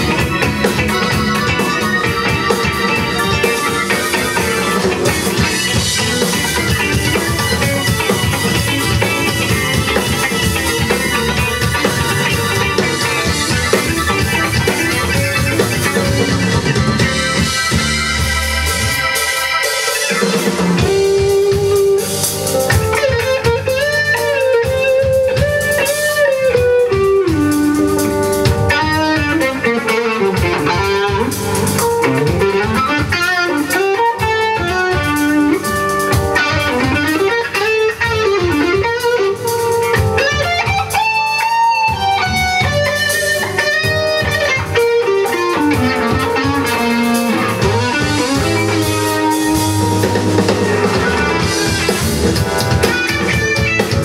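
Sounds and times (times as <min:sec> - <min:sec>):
electric guitar solo: 0:00.0 - 0:54.0
live rock band playing: 0:00.0 - 0:54.0.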